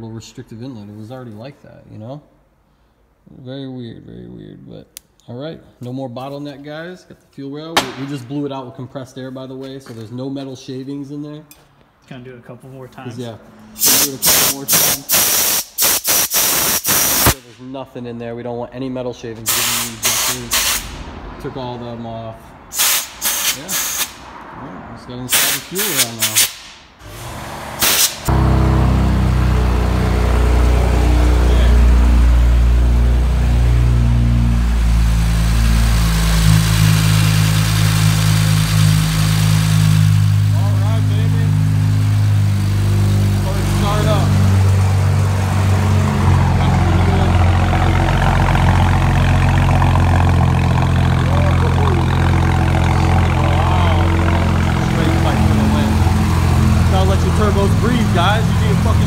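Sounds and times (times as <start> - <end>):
car engine starting: 13.0 - 59.0
car engine idling: 26.6 - 59.0.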